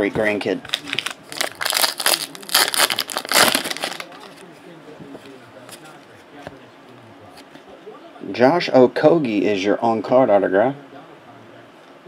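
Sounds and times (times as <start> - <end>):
cards rustling: 0.2 - 4.6
foil wrapper crinkling: 0.6 - 4.5.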